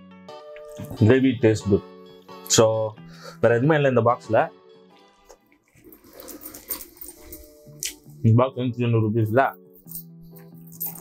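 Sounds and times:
man chewing food: 0:05.0 - 0:08.1.

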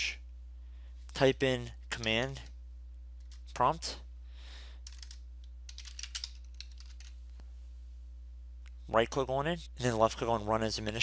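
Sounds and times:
steady low hum: 0:00.0 - 0:11.0
computer keyboard typing: 0:04.8 - 0:07.1.

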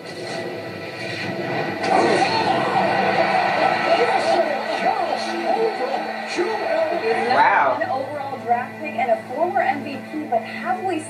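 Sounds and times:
background music: 0:00.0 - 0:11.0
indistinct voice: 0:01.8 - 0:08.8.

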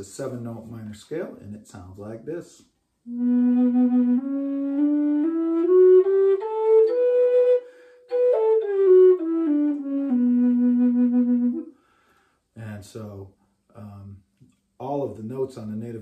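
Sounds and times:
flute playing a scale: 0:03.1 - 0:11.8.

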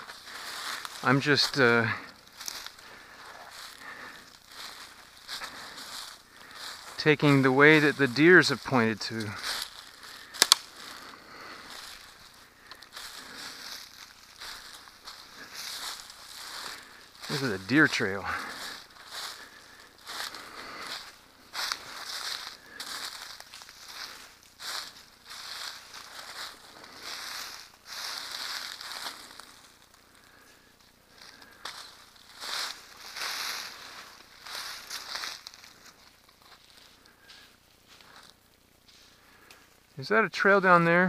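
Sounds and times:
brush rustling: 0:00.0 - 0:39.8
footsteps crunching on dry leaves: 0:00.0 - 0:39.9.

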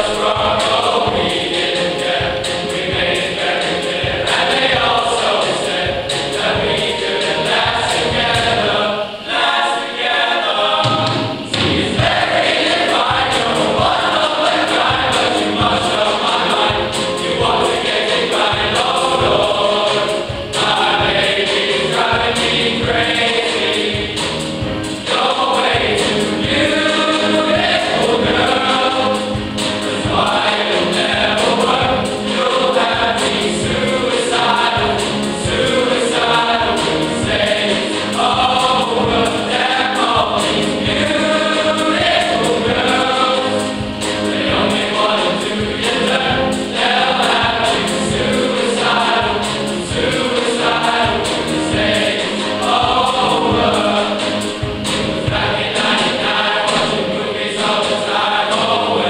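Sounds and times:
boys choir singing: 0:00.0 - 0:59.0.

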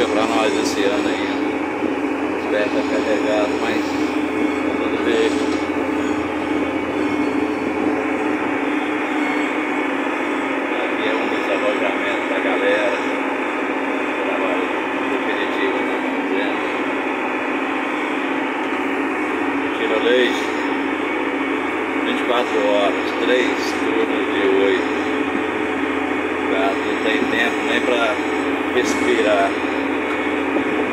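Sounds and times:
tractor engine droning: 0:00.0 - 0:30.9.

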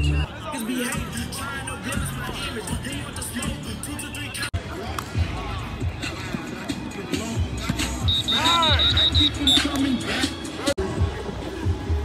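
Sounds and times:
voices talking and calling: 0:00.0 - 0:11.9.

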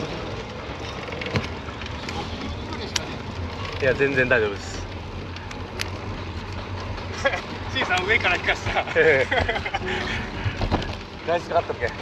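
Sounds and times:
bicycle rolling on track: 0:00.0 - 0:12.0.

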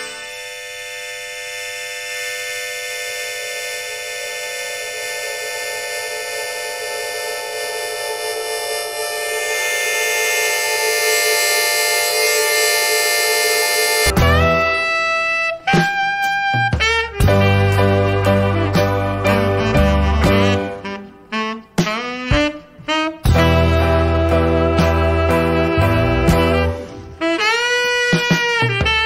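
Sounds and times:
harmonica playing a held chord: 0:00.0 - 0:22.2, 0:22.8 - 0:28.9.

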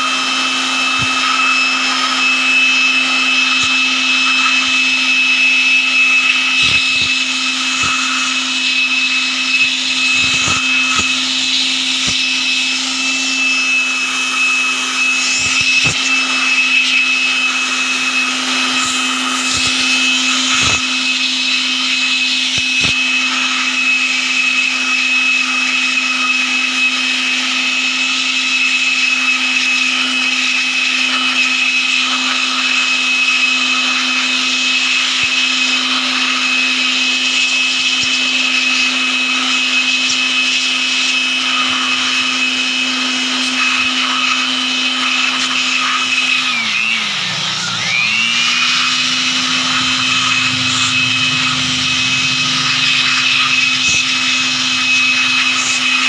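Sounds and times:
electric blower whining: 0:00.0 - 0:56.0.

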